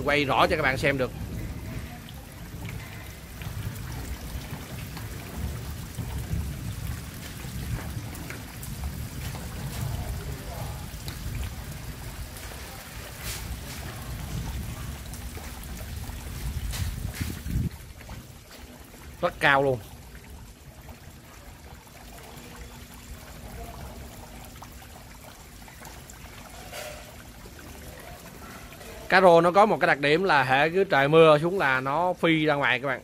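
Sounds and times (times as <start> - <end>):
faint trickling water: 0.0 - 33.0.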